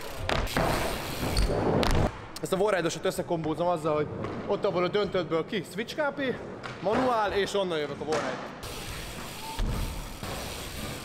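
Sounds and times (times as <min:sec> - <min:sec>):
bike tyres rumbling on ramps: 0:00.0 - 0:02.1, 0:08.6 - 0:11.0.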